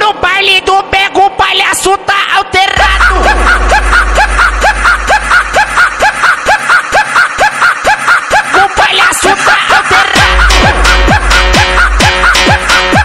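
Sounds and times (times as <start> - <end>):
looped laugh sample: 2.6 - 13.0
deep bass tone: 2.8 - 5.9, 10.2 - 12.5.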